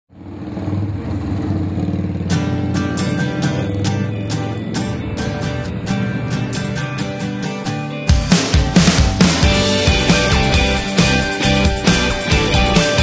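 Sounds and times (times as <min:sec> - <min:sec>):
sustained guitar chord: 0:02.2 - 0:13.0
drums with cymbal hits: 0:08.1 - 0:13.0.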